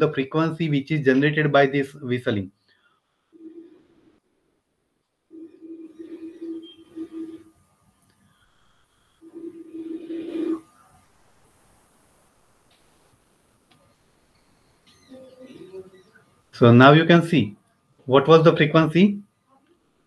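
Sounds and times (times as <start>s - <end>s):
bottle whistling note: 6.0s - 7.4s.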